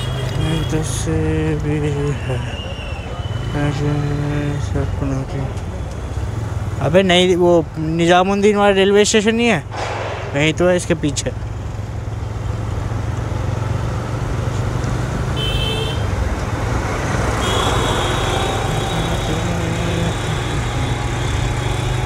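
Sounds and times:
passing traffic: 0.0s - 22.0s
horn beep: 17.4s - 20.6s.

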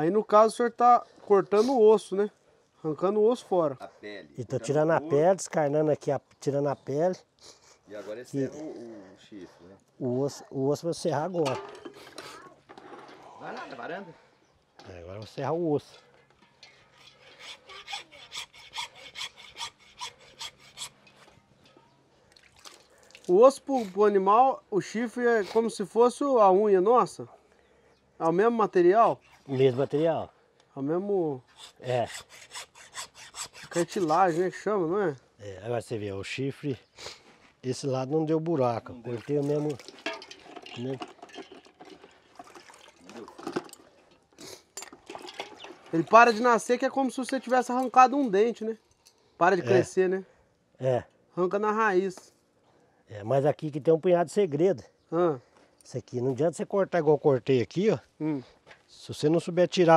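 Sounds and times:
hand saw rasping through bone: 16.8s - 21.0s, 31.5s - 34.5s
water sloshing in a plastic bucket: 22.2s - 23.3s, 39.1s - 46.4s.

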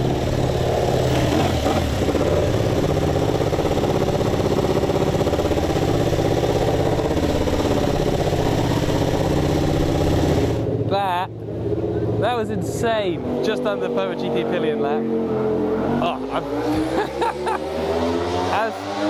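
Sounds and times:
motorcycle engine idling: 0.0s - 12.2s.

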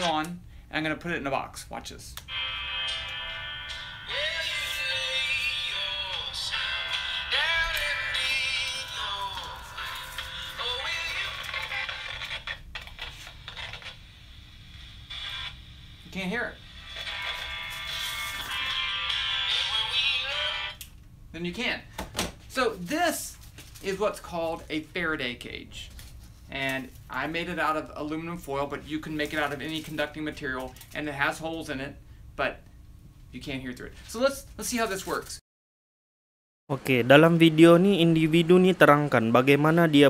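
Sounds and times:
music with singing from small radio: 2.3s - 13.9s, 16.7s - 20.8s.

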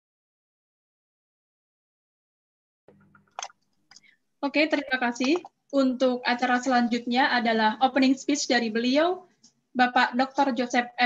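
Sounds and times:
mouth clicks: 2.9s - 4.2s, 4.8s - 5.6s.

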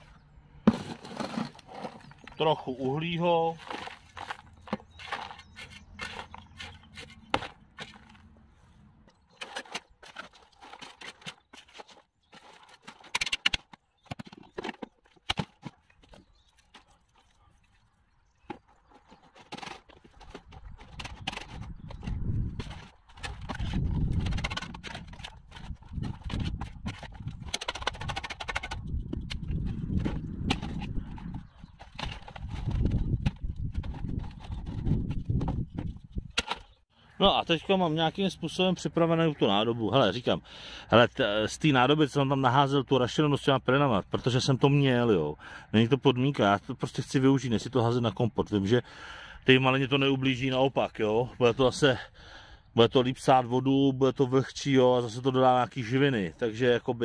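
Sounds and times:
spade scraping in plastic tub: 0.6s - 16.8s
garden sieve rattling: 0.7s - 8.3s, 9.2s - 17.5s, 18.3s - 36.8s.

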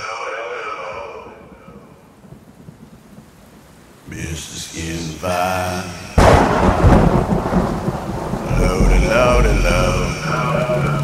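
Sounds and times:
thunder crack and rumble: 6.2s - 11.0s.

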